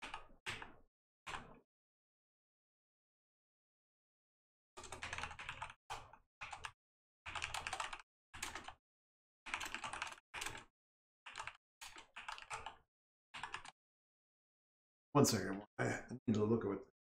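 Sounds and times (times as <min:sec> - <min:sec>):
typing on a computer keyboard: 0:00.0 - 0:01.6, 0:04.8 - 0:08.8, 0:09.5 - 0:10.7, 0:11.3 - 0:12.8, 0:13.4 - 0:13.8.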